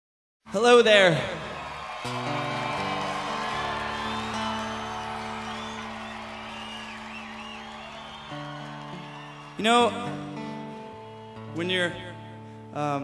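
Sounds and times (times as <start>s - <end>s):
audience cheering: 0.5s - 11.5s
acoustic guitar chords: 2.0s - 13.0s.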